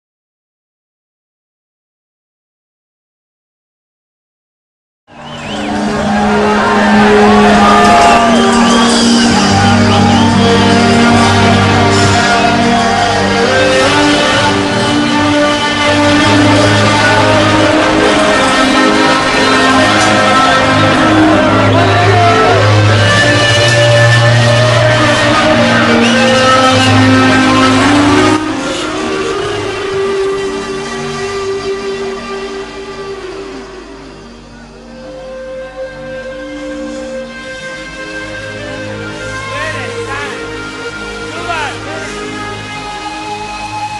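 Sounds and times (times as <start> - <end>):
crowd: 5.1 - 43.9
synthesizer sustained chords: 5.1 - 43.9
live band music: 5.4 - 43.9.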